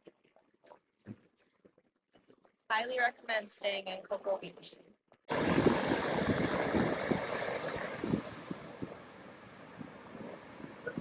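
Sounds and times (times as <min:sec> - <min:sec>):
ocean surf: 0:05.3 - 0:11.0
wind buffeting microphone: 0:05.3 - 0:11.0.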